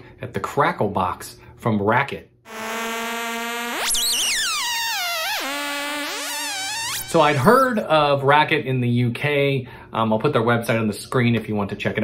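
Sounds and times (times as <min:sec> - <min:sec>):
synth buzzing drone: 0:02.5 - 0:07.5
swooping wobbling synth tone: 0:02.5 - 0:07.6.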